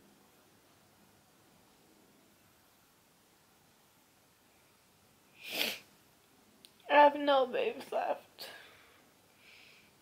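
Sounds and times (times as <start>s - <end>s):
woman's voice: 6.8s - 8.6s.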